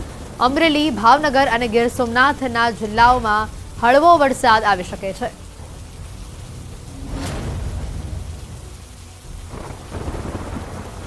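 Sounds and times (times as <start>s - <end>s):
heavy rain on a street: 0.0s - 11.0s
thunder rumbling: 0.0s - 11.0s.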